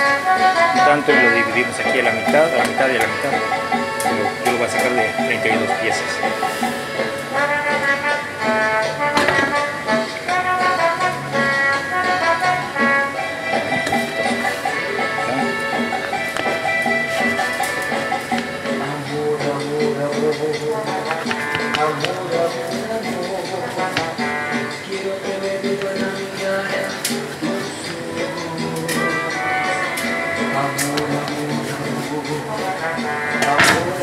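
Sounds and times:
music from a radio: 0:00.0 - 0:34.0
person talking: 0:00.8 - 0:06.3, 0:13.5 - 0:16.2.

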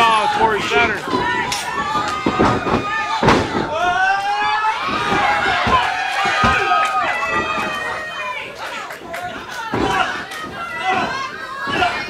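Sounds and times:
spectators shouting: 0:00.0 - 0:12.0
bodies thudding on ring mat: 0:01.0 - 0:07.7.

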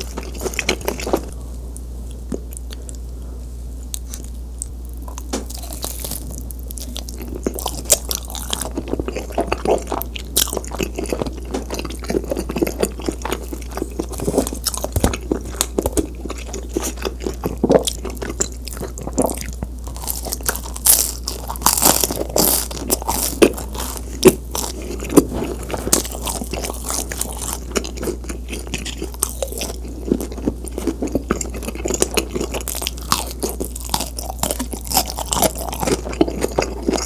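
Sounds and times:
chewing pizza: 0:00.0 - 0:03.2, 0:03.8 - 0:37.0.

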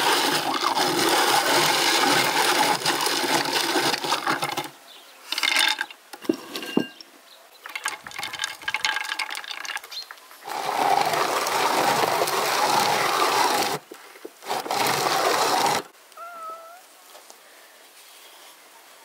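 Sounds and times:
drum grater grinding nuts: 0:00.0 - 0:04.7, 0:10.4 - 0:15.9
cat meowing: 0:16.2 - 0:16.9.

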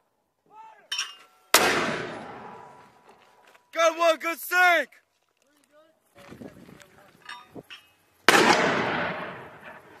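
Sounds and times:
mortar blast with echo: 0:01.5 - 0:02.8, 0:08.3 - 0:10.0.

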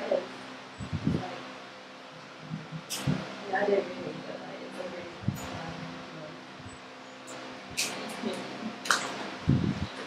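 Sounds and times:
electric fans humming: 0:00.0 - 0:10.0.

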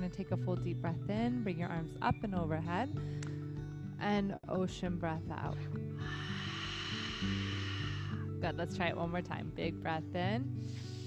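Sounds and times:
soft background music: 0:00.0 - 0:11.0
breathy exhale hiss: 0:05.9 - 0:08.4, 0:10.6 - 0:11.0.

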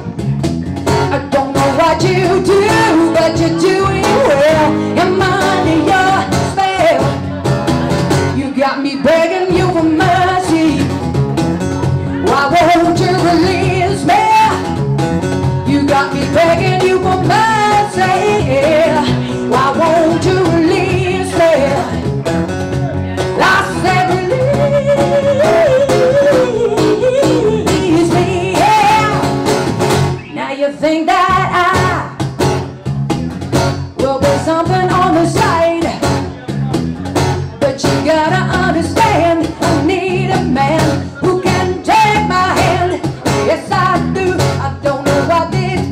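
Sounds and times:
electric bass: 0:00.0 - 0:08.6, 0:09.5 - 0:30.3, 0:31.1 - 0:45.9
acoustic guitar: 0:00.0 - 0:45.9
woman singing: 0:00.9 - 0:07.5, 0:08.1 - 0:11.1, 0:12.0 - 0:14.9, 0:15.5 - 0:22.1, 0:23.2 - 0:29.4, 0:30.2 - 0:32.3, 0:33.9 - 0:36.2, 0:37.6 - 0:45.9
cajon: 0:09.4 - 0:30.3, 0:31.3 - 0:45.9.

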